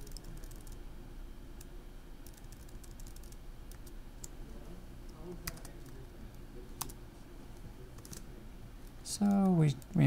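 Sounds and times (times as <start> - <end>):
typing on computer keyboard: 0.0 - 0.8, 2.2 - 4.0, 5.4 - 5.9.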